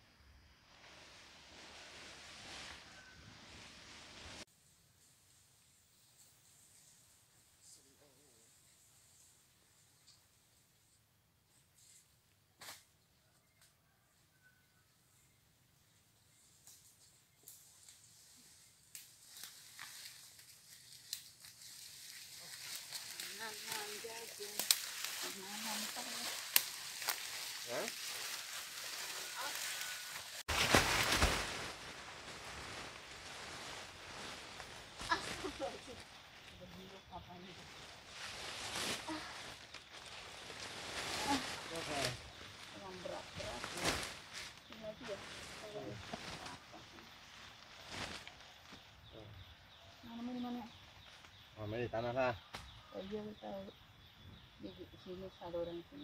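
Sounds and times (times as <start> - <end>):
rustling through dry leaves: 0.7 - 10.2, 16.4 - 51.6.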